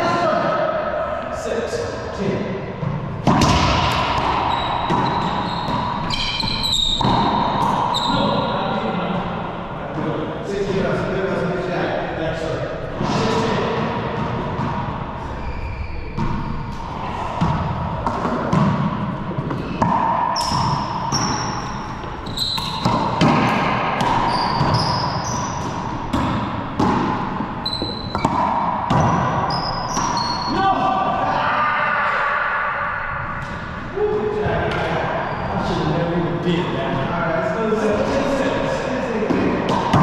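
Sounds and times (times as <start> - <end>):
racquetball hits echoing: 2.7 - 11.0, 12.8 - 31.2, 32.8 - 36.6, 37.7 - 40.0
sneakers squeaking on floor: 2.8 - 8.9, 12.9 - 30.6, 34.7 - 35.8.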